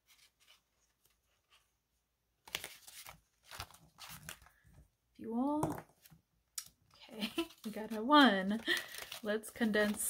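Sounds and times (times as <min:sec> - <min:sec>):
paper banknotes rustling: 0:02.4 - 0:04.7, 0:07.2 - 0:10.0.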